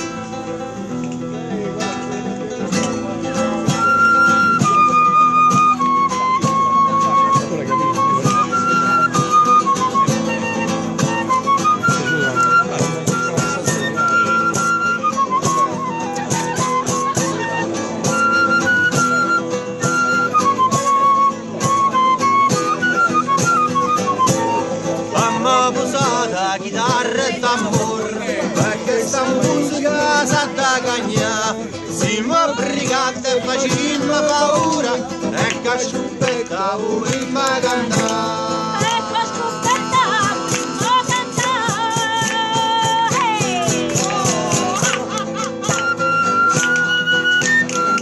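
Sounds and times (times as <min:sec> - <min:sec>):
strummed acoustic guitar: 0:00.0 - 0:48.0
clarinet melody: 0:03.4 - 0:26.2, 0:38.2 - 0:48.0.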